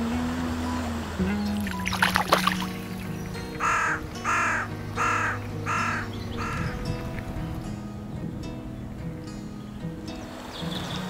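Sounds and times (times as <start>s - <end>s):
background music: 0.0s - 11.0s
crow cawing: 3.6s - 6.9s.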